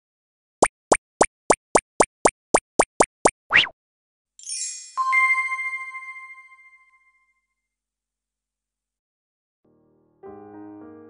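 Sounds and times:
cartoon pops: 0.6s - 3.8s.

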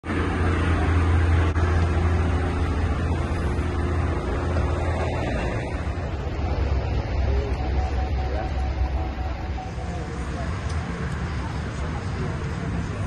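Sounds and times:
engine idling: 0.0s - 13.0s
traffic noise: 0.0s - 13.0s.

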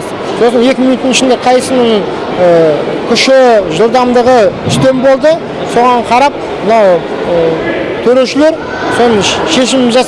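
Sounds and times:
crowd hubbub in a hall: 0.0s - 10.0s
man talking: 0.4s - 10.0s.

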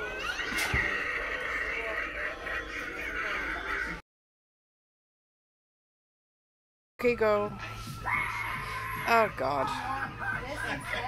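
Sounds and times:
creature-like voice effects: 0.0s - 4.0s.

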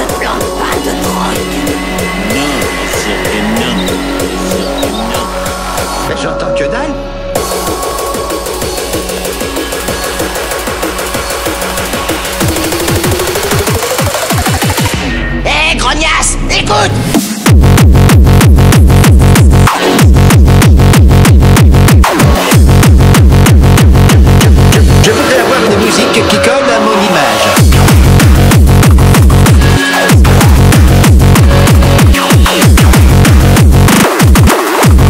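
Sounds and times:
distorted kick drum: 0.0s - 6.1s, 7.4s - 15.1s, 17.0s - 25.9s, 27.6s - 35.0s
electronic bass: 0.0s - 35.0s
hard techno music: 0.0s - 35.0s.

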